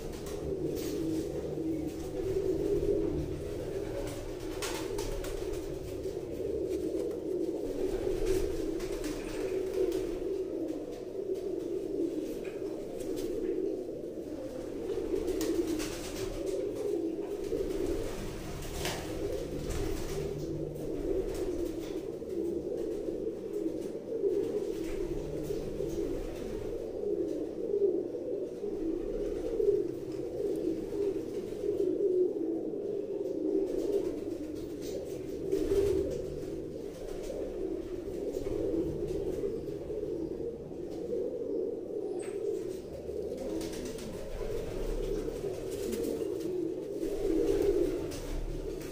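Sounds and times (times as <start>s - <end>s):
pigeons cooing: 0.0s - 48.9s.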